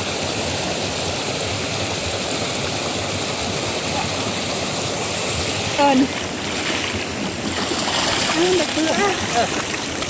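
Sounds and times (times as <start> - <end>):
fish thrashing in water: 6.2 - 10.0.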